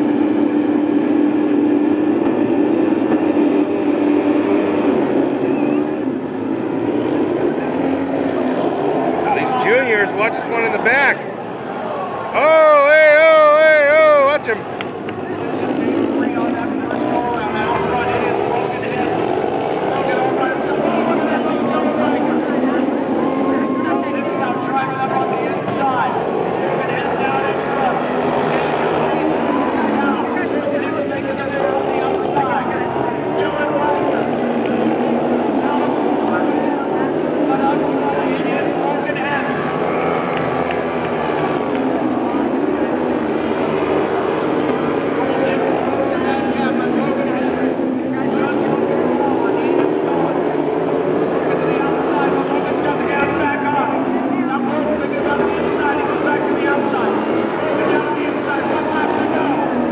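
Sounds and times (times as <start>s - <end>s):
motorcycle engines racing: 0.0s - 59.9s.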